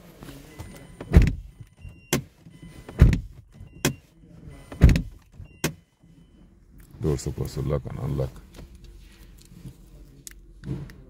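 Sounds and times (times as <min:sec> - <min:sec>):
car door shutting with thump: 0:01.1 - 0:01.4, 0:03.0 - 0:04.0, 0:04.8 - 0:05.8.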